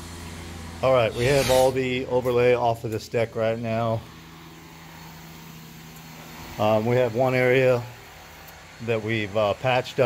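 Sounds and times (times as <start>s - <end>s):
machine humming: 0.0s - 10.0s.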